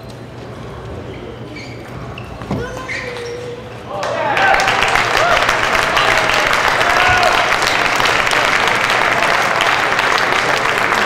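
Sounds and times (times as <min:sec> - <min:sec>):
long held shout: 0:03.9 - 0:07.6
applause: 0:04.0 - 0:11.0.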